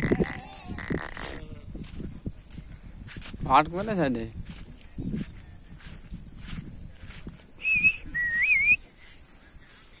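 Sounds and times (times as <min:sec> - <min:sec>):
whistled notes: 0:07.6 - 0:09.1.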